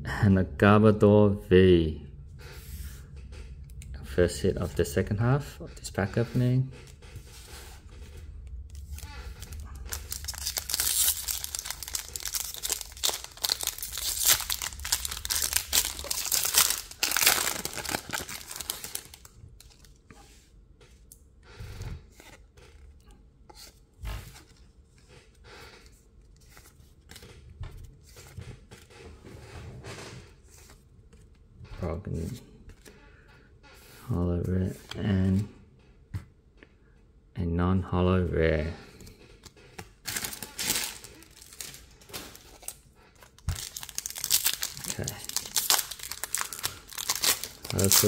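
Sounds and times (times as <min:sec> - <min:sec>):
foil wrapper tearing and crinkling: 0:08.8 - 0:20.0, 0:40.1 - 0:48.0.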